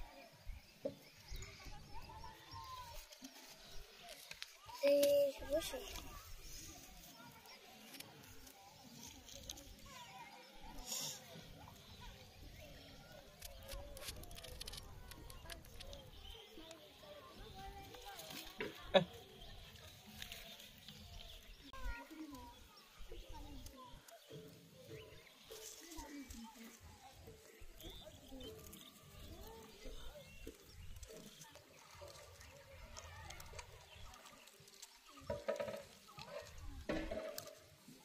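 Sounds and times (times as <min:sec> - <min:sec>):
faint voices talking: 0:00.0 - 0:38.0
small clicks and knocks: 0:13.2 - 0:16.8, 0:30.4 - 0:37.9.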